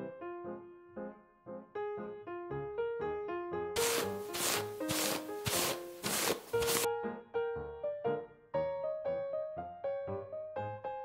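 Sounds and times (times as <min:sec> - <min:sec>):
light piano music: 0:00.0 - 0:11.0
scratchy rubbing on paper: 0:03.8 - 0:06.9.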